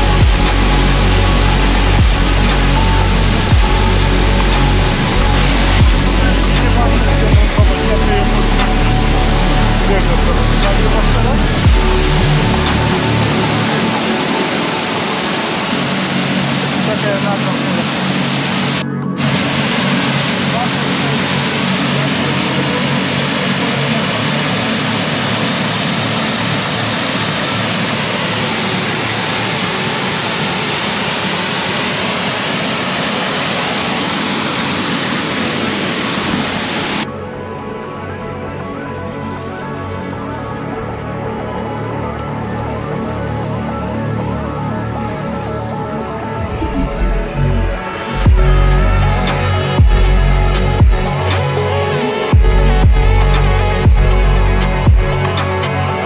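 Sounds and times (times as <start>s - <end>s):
music with heavy low beat: 0.0s - 14.7s, 46.4s - 56.0s
mountain stream rushing: 0.0s - 56.0s.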